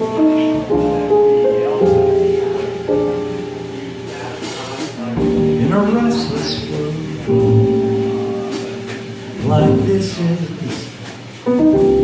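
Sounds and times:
jazz trio playing a slow ballad: 0.0s - 12.0s
person singing: 9.4s - 11.0s.

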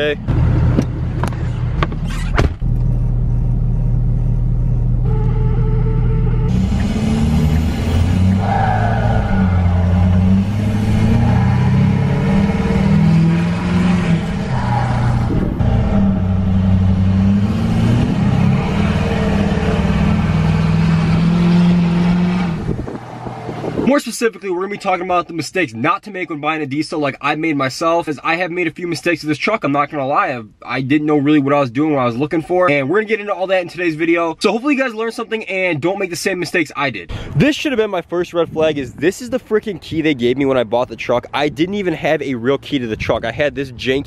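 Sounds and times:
diesel engine running: 0.0s - 23.9s.

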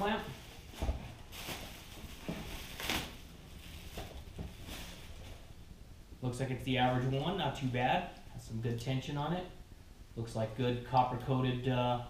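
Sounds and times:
plastic packaging rustling: 0.0s - 5.6s.

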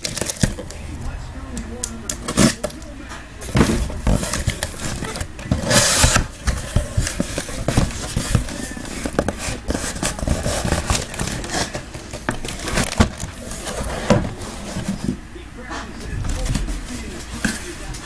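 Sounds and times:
cardboard scraping and rustling: 0.0s - 18.0s.

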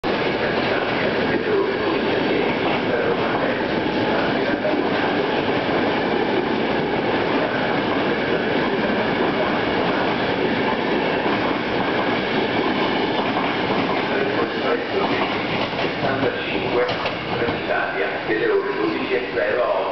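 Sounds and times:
train coaches rumbling past: 0.0s - 19.9s
wheels clattering on track: 6.4s - 17.7s.

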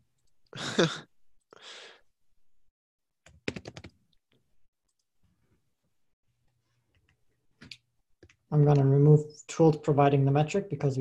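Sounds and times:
person sighing breath: 0.6s - 2.1s
keyboard clicks: 3.3s - 4.0s.

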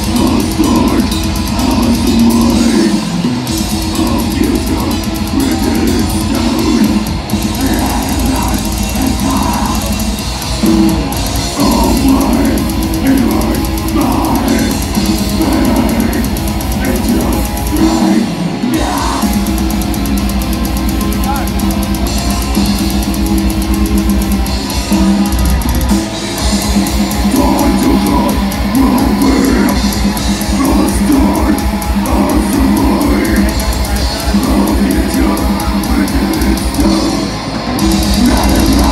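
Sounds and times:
person singing: 0.0s - 19.8s, 27.1s - 38.9s
heavy metal band playing live: 0.0s - 38.9s.

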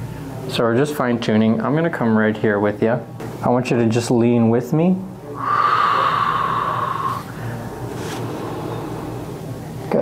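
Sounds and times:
person breathing out: 5.4s - 7.7s.

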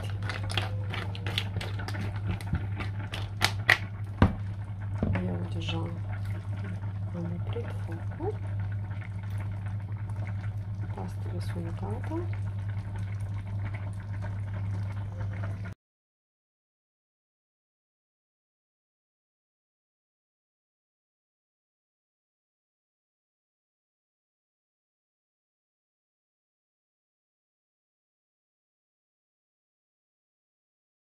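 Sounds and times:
sauce bubbling in frying pan: 0.0s - 15.8s
steady low hum: 0.0s - 15.8s.

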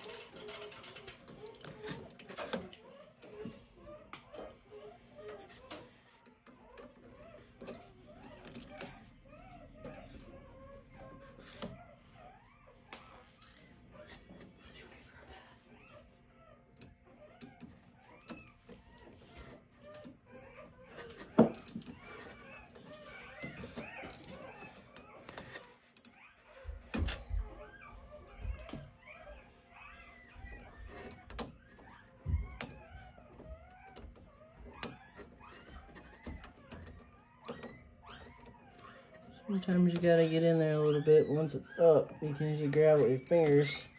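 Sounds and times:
puppies squeaking: 0.0s - 43.9s
metal pick clicking and scraping: 5.4s - 9.0s, 20.9s - 26.2s.

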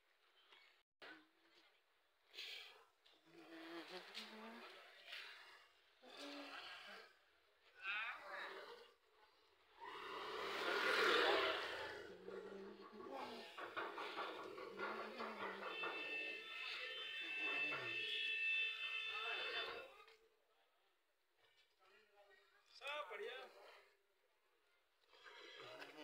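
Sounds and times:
people talking in the street: 9.3s - 20.8s.

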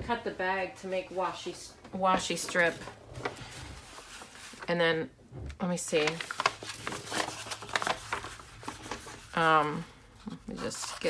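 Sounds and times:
paper bag crinkling: 2.3s - 4.7s, 5.9s - 9.4s.

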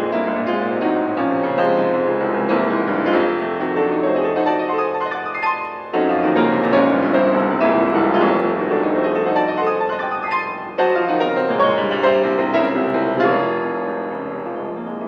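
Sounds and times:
solo piano classical music: 0.0s - 15.0s.

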